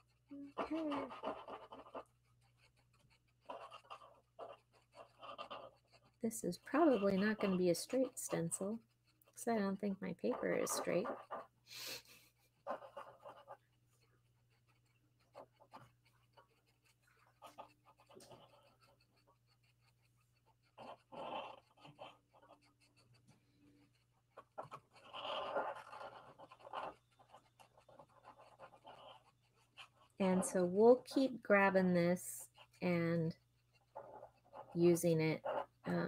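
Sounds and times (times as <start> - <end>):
pen scratching over card: 0.0 - 36.0.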